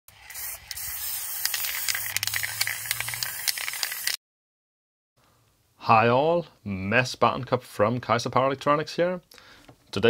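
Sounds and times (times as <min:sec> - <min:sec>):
spray paint can hissing: 0:00.1 - 0:04.2.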